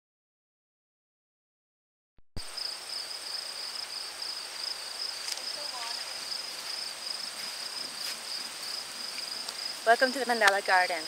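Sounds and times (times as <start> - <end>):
insects trilling: 2.5 - 11.0.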